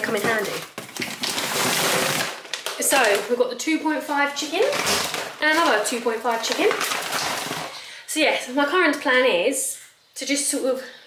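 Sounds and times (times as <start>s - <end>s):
packaging rustling and scraping: 0.0s - 3.4s, 4.4s - 7.8s.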